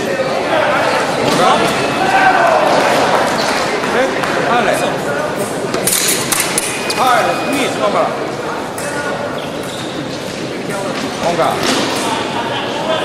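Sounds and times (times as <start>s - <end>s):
voices in echoing hall: 0.0s - 13.0s.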